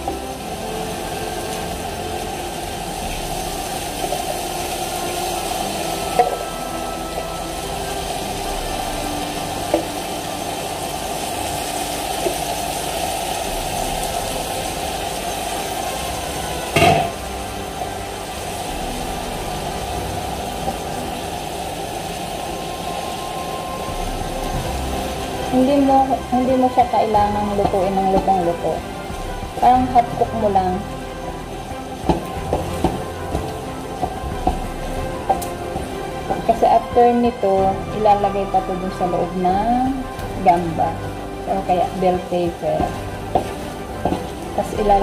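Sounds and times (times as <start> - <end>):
food sizzling in a pan: 0.0 - 45.0.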